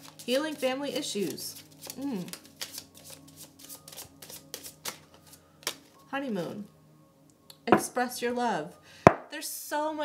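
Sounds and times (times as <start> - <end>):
cards being shuffled: 1.3 - 5.9.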